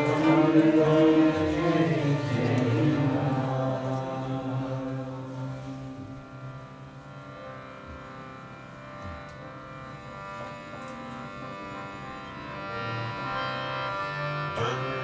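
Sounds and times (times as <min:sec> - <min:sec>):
sustained devotional music drone: 0:00.0 - 0:15.0.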